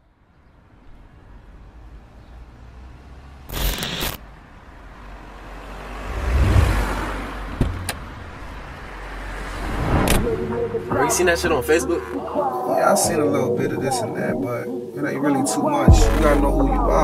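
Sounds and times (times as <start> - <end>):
car passing by: 1.2 - 3.5, 4.4 - 13.4.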